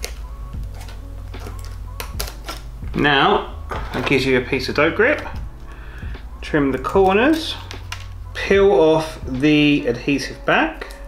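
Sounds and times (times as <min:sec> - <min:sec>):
scissors snipping grip tape: 0:00.0 - 0:02.6.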